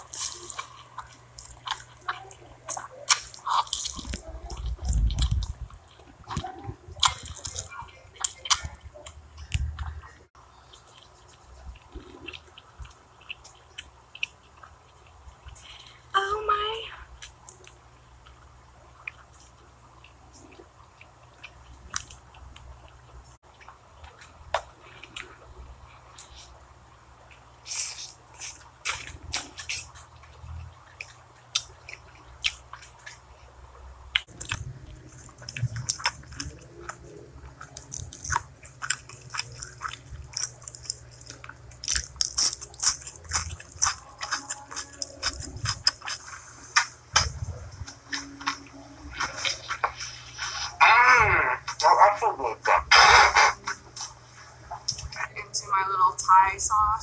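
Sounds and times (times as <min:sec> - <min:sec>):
chewing and crunching food: 0:00.0 - 0:56.9
voice with wavering pitch: 0:16.2 - 0:17.1, 0:43.3 - 0:45.9, 0:47.2 - 0:53.9, 0:54.9 - 0:57.0.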